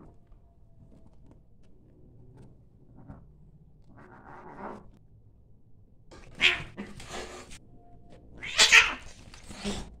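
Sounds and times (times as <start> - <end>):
cats yowling and hissing: 8.4 - 9.9.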